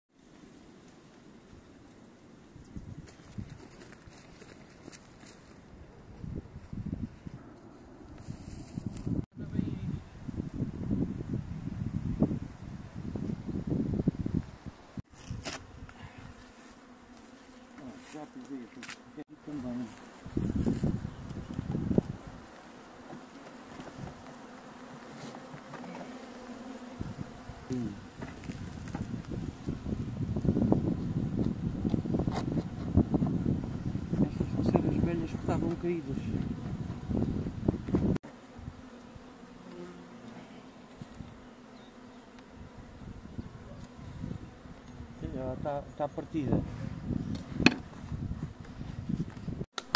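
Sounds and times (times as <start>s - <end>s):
bees buzzing: 10.4s - 49.7s.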